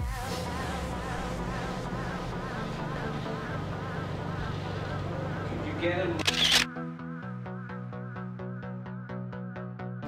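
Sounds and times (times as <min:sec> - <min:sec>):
electronic music with fast beat: 0:00.0 - 0:06.1
background music: 0:00.0 - 0:10.0
camera shutter sound: 0:06.2 - 0:06.8.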